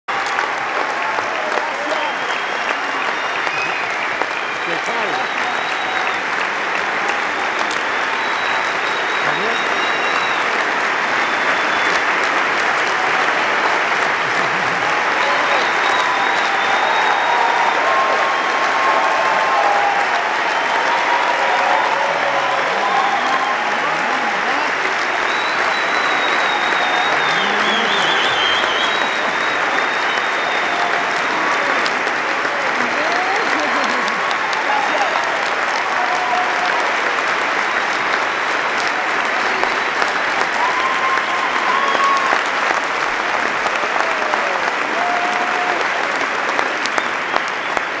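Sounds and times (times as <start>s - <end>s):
audience applauding: 0.1s - 48.0s
person whistling: 25.3s - 30.7s.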